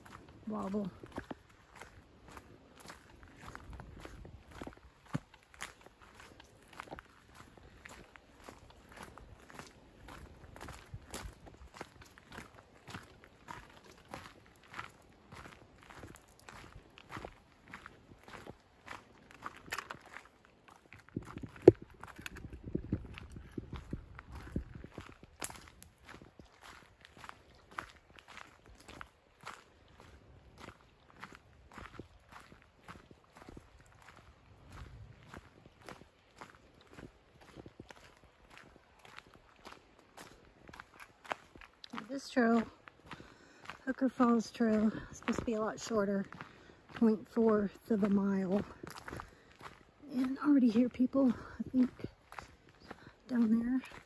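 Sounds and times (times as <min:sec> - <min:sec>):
footsteps on gravel: 0:00.0 - 0:54.0.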